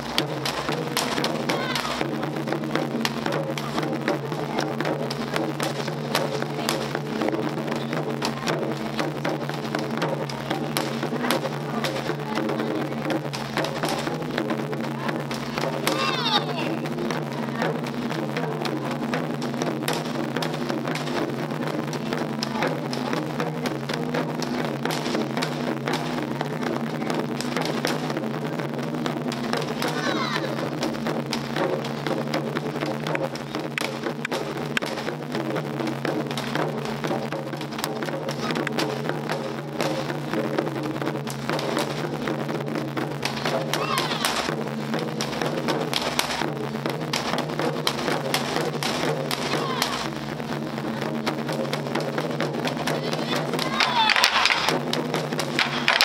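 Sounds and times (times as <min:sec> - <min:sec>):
taiko drums struck with sticks: 0:00.0 - 0:56.0.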